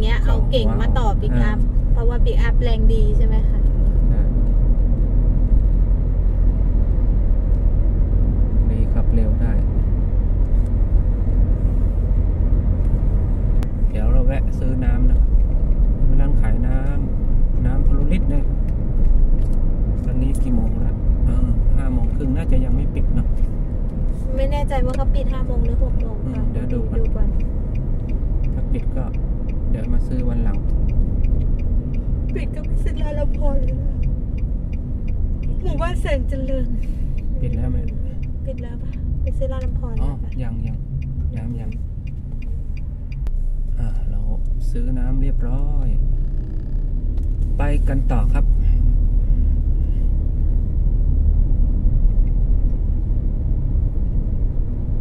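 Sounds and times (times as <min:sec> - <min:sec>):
people talking: 0:00.0 - 0:04.3, 0:20.1 - 0:23.3, 0:24.3 - 0:27.4, 0:29.8 - 0:30.6, 0:32.4 - 0:33.9, 0:35.5 - 0:36.8, 0:37.4 - 0:37.9, 0:38.5 - 0:40.7
car engine and tyre rumble: 0:00.0 - 0:55.0.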